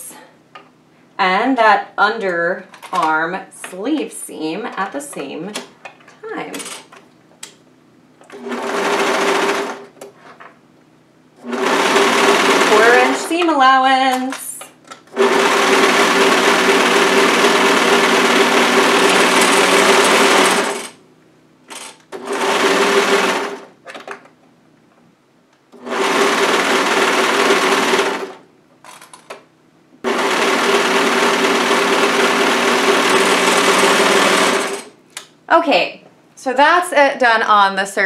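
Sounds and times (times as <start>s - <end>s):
overlocker sewing machine stitching: 8.2s - 9.9s, 11.4s - 13.4s, 15.1s - 21.0s, 21.7s - 23.8s, 25.7s - 28.4s, 30.0s - 35.0s.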